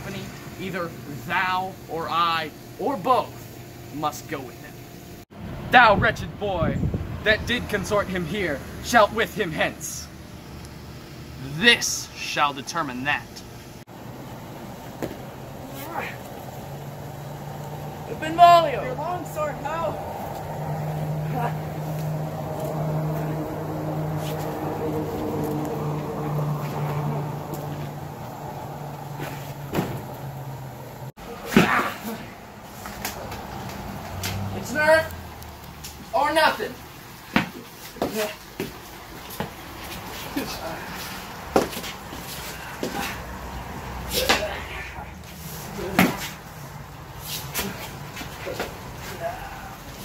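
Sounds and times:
mechanical hum: 0.0 - 50.0.

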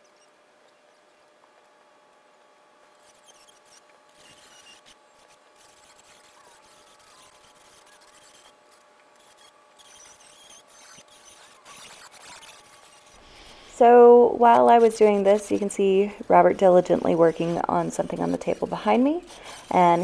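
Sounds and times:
faint steady hum: 0.0 - 20.0
metal sheet rubbing and squeaking: 3.0 - 20.0.

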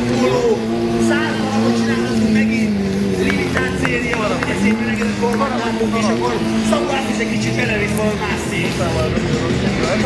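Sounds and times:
music: 0.0 - 10.0
quad bike engine running: 0.0 - 10.0.

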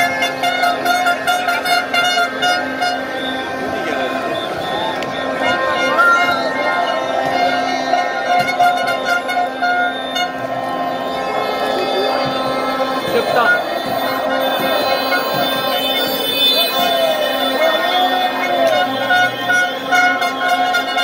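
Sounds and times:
crowd shouting and cheering: 0.0 - 21.0
horns droning: 0.0 - 21.0.

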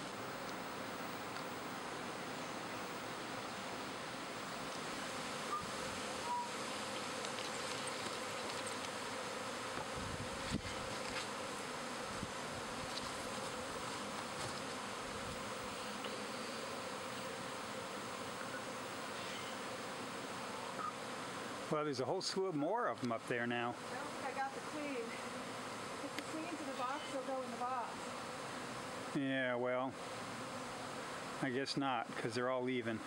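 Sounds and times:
bee swarm buzzing: 0.0 - 33.0.

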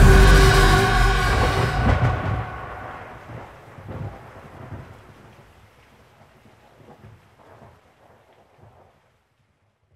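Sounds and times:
faint low rumbling: 0.0 - 4.2
rain-like hiss: 0.0 - 9.9.

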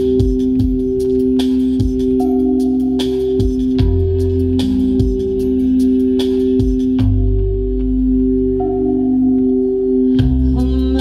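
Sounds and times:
low keyboard drone: 0.0 - 11.0.

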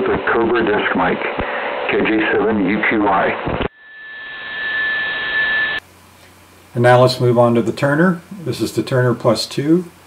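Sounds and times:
shortwave radio hiss: 0.0 - 5.8
steady high whistle: 3.8 - 5.8.

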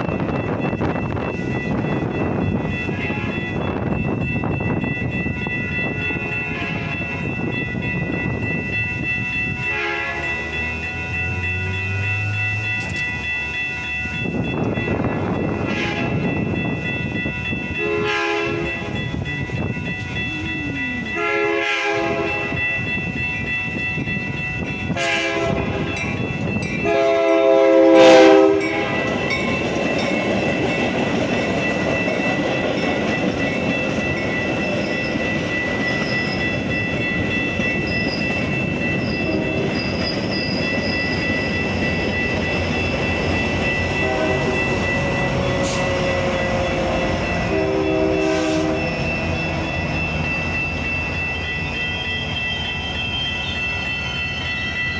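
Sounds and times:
crossing signal bell ringing: 0.0 - 54.9
train horn blasts: 6.5 - 7.0, 9.6 - 10.4, 15.6 - 16.3, 17.8 - 18.9, 20.5 - 22.6, 24.9 - 25.9, 26.8 - 29.1, 44.0 - 49.2
train wheels clattering on rails: 22.0 - 54.9.

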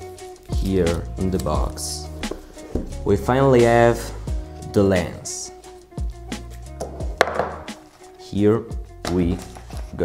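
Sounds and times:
background music: 0.0 - 10.0
sharp tap on box: 6.8 - 7.7.

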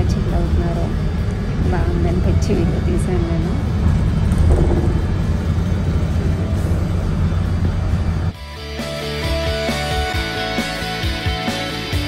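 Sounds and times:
bus engine and road noise: 0.0 - 8.5.

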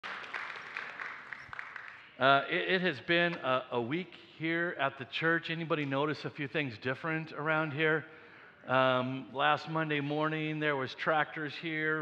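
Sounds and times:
audience applause: 0.0 - 2.1.

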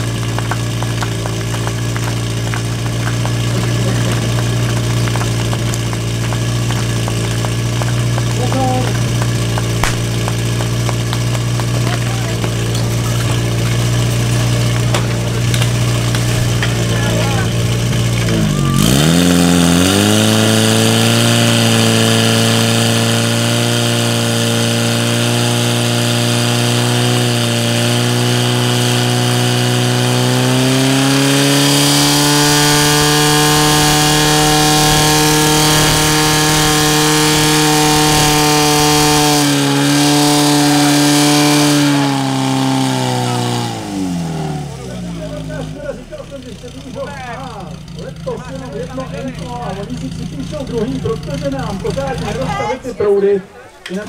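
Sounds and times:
fire pump engine running: 0.0 - 54.0.

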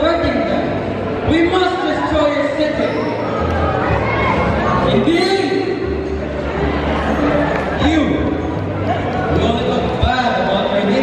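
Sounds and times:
person speaking over loudspeakers: 0.0 - 3.1, 4.7 - 6.0, 7.8 - 8.6, 9.2 - 11.0.

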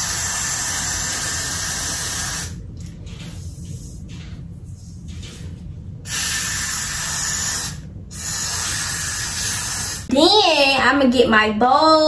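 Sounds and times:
aerosol spray hissing: 0.0 - 2.6, 6.1 - 10.1.

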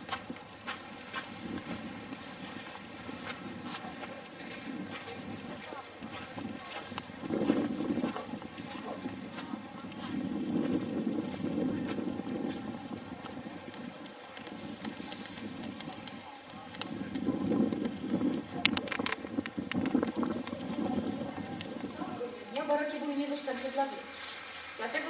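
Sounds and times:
wind buffeting microphone: 0.0 - 23.3
sharp clicks: 13.6 - 18.0, 18.6 - 20.6.

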